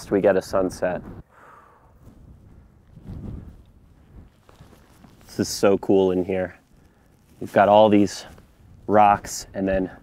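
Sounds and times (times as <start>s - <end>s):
wind rumbling on microphone: 0.0s - 10.0s.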